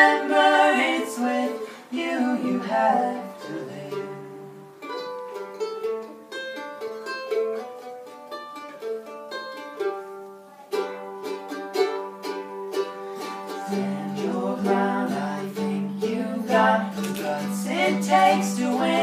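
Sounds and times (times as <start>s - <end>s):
mandolin and acoustic guitar playing: 0.0s - 19.0s.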